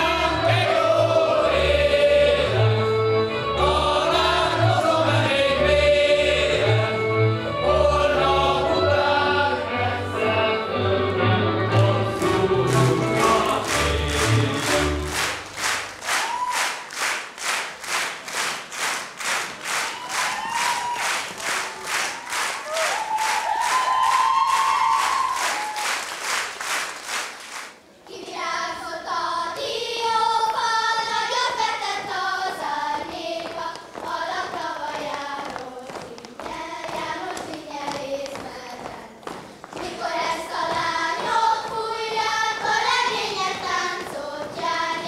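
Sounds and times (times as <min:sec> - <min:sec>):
folk dance music with singing: 0:00.0 - 0:25.7, 0:28.0 - 0:45.0
audience clapping in unison: 0:12.1 - 0:27.8.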